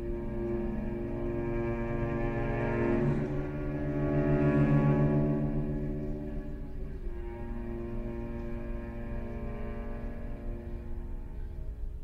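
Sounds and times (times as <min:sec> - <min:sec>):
bowed cello tone with vibrato: 0:00.0 - 0:12.0.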